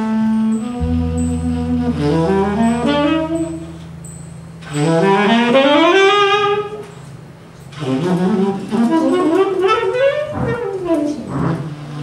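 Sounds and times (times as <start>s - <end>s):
saxophone solo: 0.0s - 4.0s, 4.6s - 7.1s, 7.7s - 12.0s
jazz combo playing: 0.0s - 12.0s.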